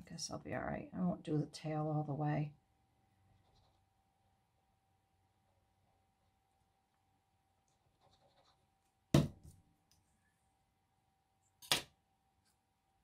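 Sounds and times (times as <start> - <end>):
objects knocking on tabletop: 9.2 - 9.5.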